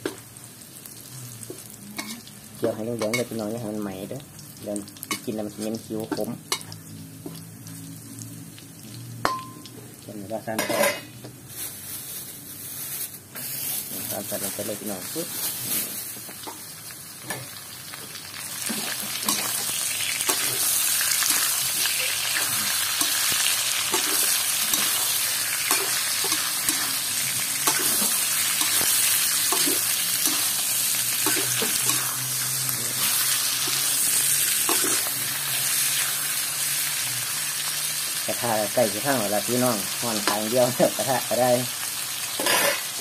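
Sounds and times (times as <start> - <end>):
meat sizzling in a wok: 0.0 - 43.0
metal spatula scraping: 18.7 - 33.8.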